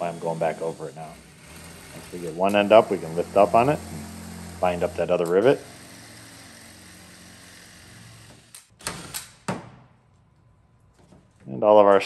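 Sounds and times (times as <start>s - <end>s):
cordless drill drilling metal: 0.0s - 9.4s.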